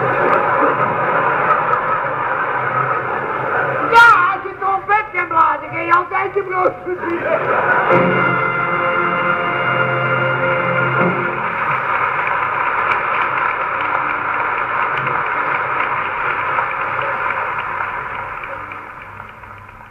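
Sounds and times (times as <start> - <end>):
audience applause: 0.0 - 19.9.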